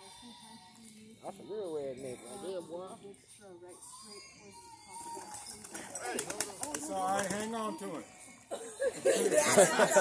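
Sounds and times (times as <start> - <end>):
people's voices: 0.0 - 10.0
dove wings flapping: 5.0 - 7.6.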